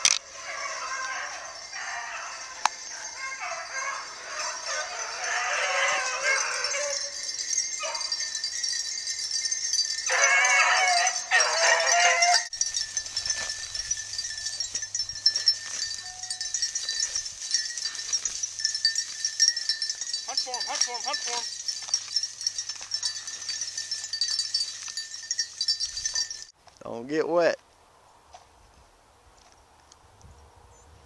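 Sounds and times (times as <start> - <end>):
dogs baying: 0.2 - 26.5.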